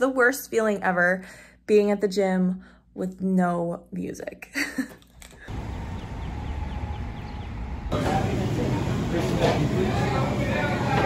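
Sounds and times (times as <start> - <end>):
low rumble of wind or traffic: 5.5 - 9.2
small bird chirping: 5.9 - 7.9.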